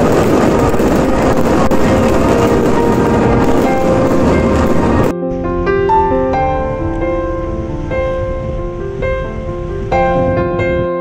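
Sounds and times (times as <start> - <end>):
wind and water rushing: 0.0 - 5.1, 6.6 - 10.9
wind buffeting microphone: 0.0 - 5.1, 6.7 - 11.0
faint piano music: 0.0 - 11.0.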